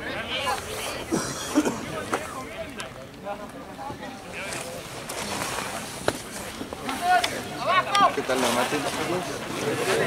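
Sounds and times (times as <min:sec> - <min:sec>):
faint indistinct voices: 0:00.0 - 0:10.0
outdoor background noise: 0:00.0 - 0:10.0.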